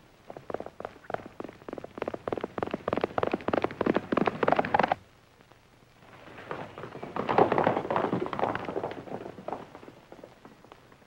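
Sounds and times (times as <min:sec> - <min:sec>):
galloping hoofbeats: 0:00.3 - 0:05.0, 0:06.1 - 0:11.0.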